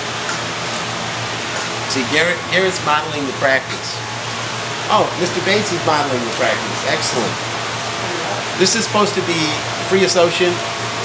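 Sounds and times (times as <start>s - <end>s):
constant low hum: 0.0s - 11.0s
fan running: 0.0s - 11.0s.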